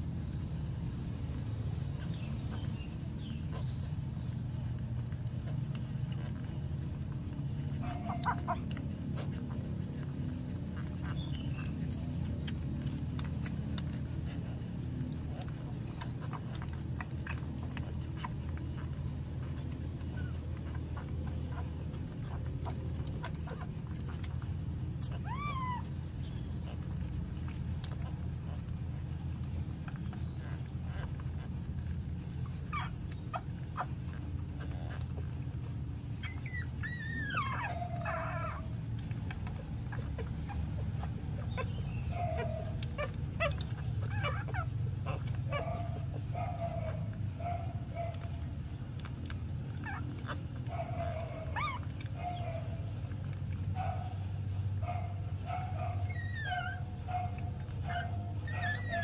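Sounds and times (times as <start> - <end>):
puppies suckling: 0.0 - 59.0
steady low hum: 0.0 - 59.0
puppies squeaking: 0.1 - 59.0.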